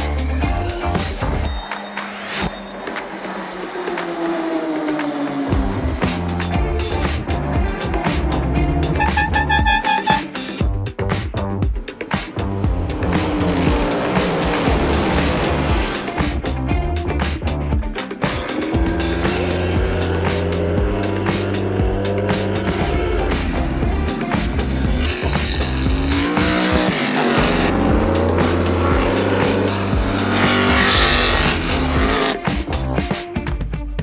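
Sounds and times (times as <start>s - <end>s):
background music with bass: 0.0s - 34.0s
racing car engines accelerating: 2.0s - 10.4s, 12.1s - 32.7s.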